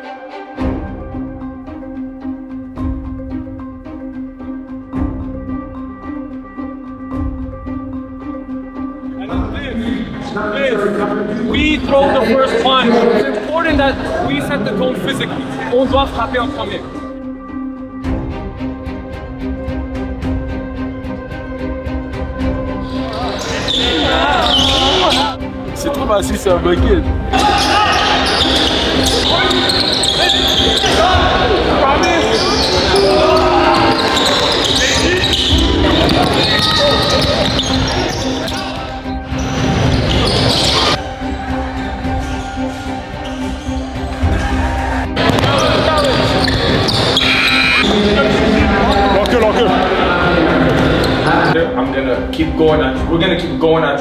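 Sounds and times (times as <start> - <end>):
background music: 0.0 - 54.0
players calling out: 23.1 - 25.4, 27.3 - 39.1, 43.2 - 51.6.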